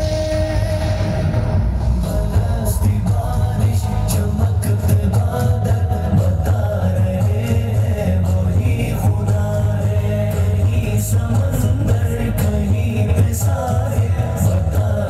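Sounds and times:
devotional song: 0.0s - 15.0s
drum strikes: 0.0s - 15.0s
heavy bass line: 0.0s - 15.0s.

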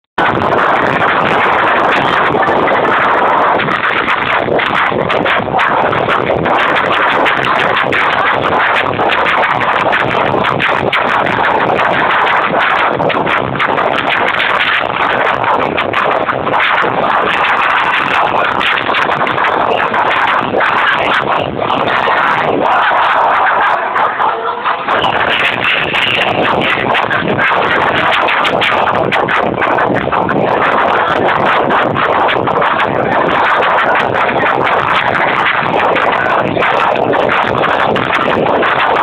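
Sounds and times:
electronic dance music: 0.2s - 39.0s.

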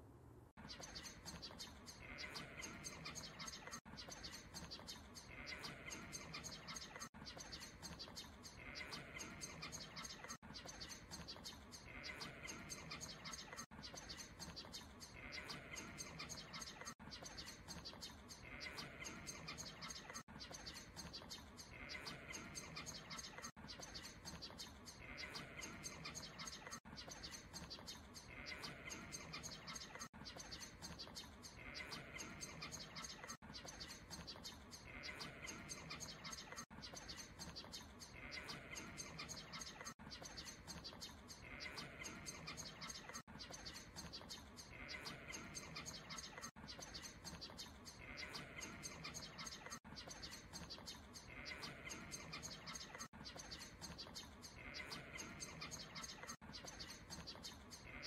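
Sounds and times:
birds chirping: 0.0s - 58.0s.

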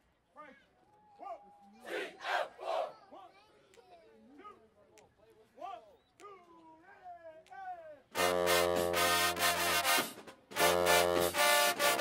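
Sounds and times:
scattered quieter voices: 1.6s - 4.4s
group shouting in unison: 1.8s - 3.0s.

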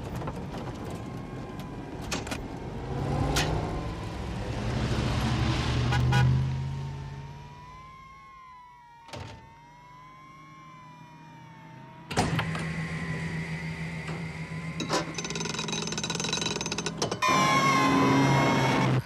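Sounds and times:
small jet engine whining: 6.2s - 15.2s, 16.9s - 19.0s.

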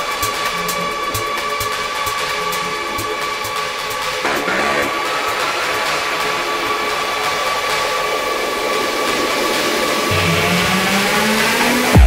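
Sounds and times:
hissing noise wash: 0.0s - 12.0s.

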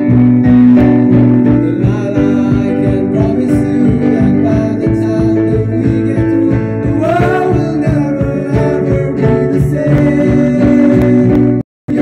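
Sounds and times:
acoustic guitar with steady beat: 0.0s - 12.0s
young men singing: 1.4s - 12.0s.

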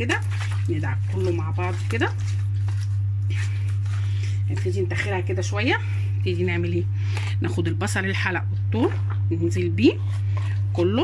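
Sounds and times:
hands rubbing raw chicken: 0.0s - 6.0s
steady low hum: 0.0s - 11.0s.

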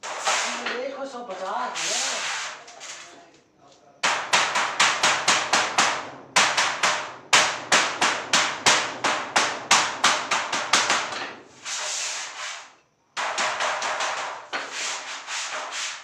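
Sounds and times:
hammer striking steel sheet: 0.0s - 0.8s, 4.0s - 11.8s, 13.2s - 16.0s.

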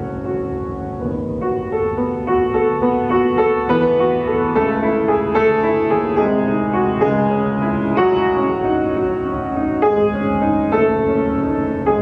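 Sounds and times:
piano music: 0.0s - 12.0s.

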